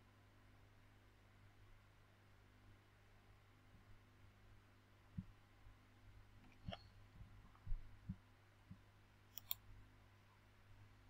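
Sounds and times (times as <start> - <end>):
low steady hum: 0.0 - 11.0
soft low thumps: 7.2 - 8.8
computer mouse clicks: 9.3 - 9.6.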